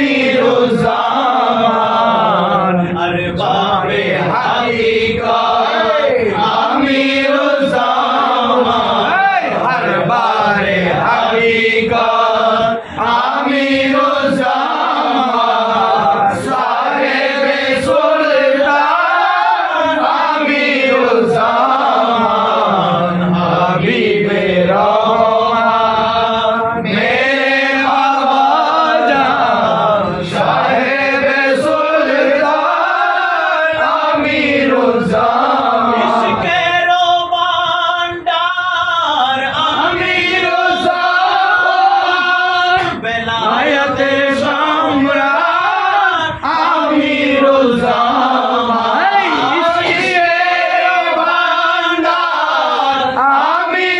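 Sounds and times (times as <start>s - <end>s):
group of men chanting: 0.0s - 53.9s.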